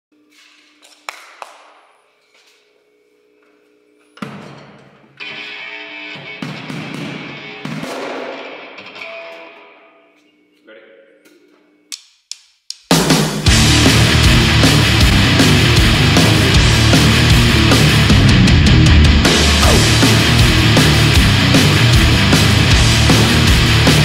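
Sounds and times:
loud guitar chord ringing: 0:13.5 - 0:24.0
ringing electric guitar notes: 0:13.5 - 0:24.0.

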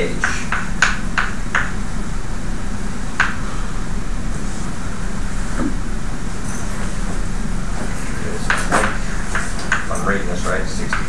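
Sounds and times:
low room hum: 0:00.0 - 0:11.0.

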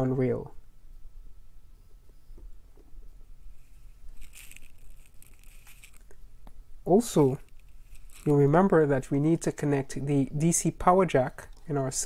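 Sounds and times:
soft rustle: 0:02.0 - 0:09.3.

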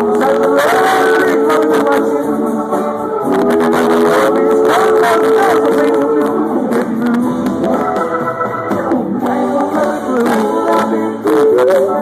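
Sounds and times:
drums: 0:00.0 - 0:12.0
electric guitars: 0:00.0 - 0:12.0
live rock band playing: 0:00.0 - 0:12.0
person singing: 0:00.0 - 0:12.0.

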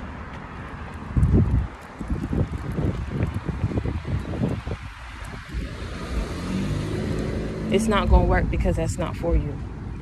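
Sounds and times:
wind buffeting microphone: 0:00.3 - 0:10.0
car passing by: 0:02.3 - 0:08.4.

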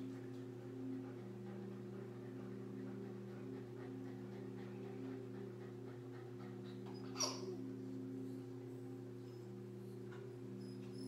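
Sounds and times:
pool pump humming: 0:00.0 - 0:11.0
dog whimpering: 0:00.9 - 0:08.3.

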